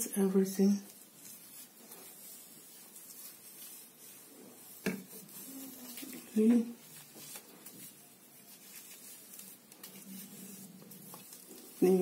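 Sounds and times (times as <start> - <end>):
cotton pad rubbing skin: 0.8 - 12.0
woman speaking: 5.4 - 6.8, 11.8 - 12.0.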